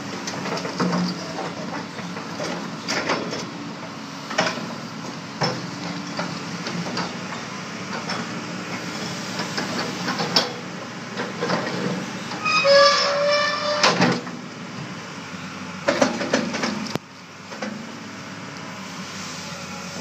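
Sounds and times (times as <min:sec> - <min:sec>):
excavator engine and hydraulics: 0:00.0 - 0:20.0
high metallic squeal: 0:12.4 - 0:14.0.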